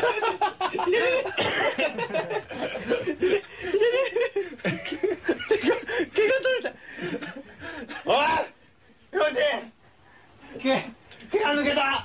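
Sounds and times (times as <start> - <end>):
men laughing: 0.0 - 8.4.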